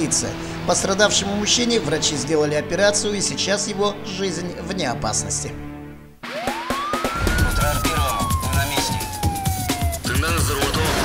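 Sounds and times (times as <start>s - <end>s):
theme music with a beat: 5.6s - 11.0s
siren wail: 6.2s - 10.7s.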